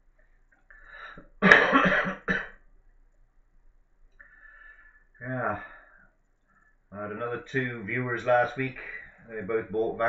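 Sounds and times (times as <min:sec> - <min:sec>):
man clearing throat: 0:01.4 - 0:02.5
man coughing: 0:01.4 - 0:02.5
man talking: 0:05.2 - 0:05.8, 0:07.0 - 0:10.0.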